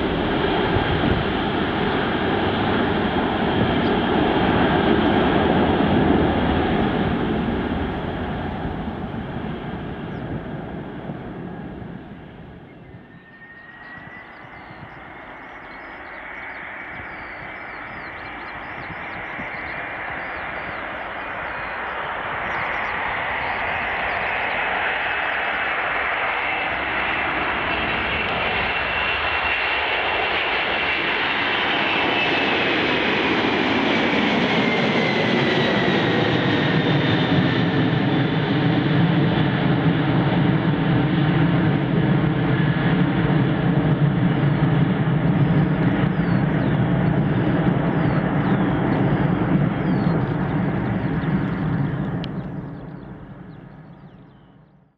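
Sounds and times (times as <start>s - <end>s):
deep engine rumble: 0.0s - 25.3s, 43.2s - 54.5s
high engine whine: 0.0s - 54.5s
jet engines running: 0.0s - 54.7s.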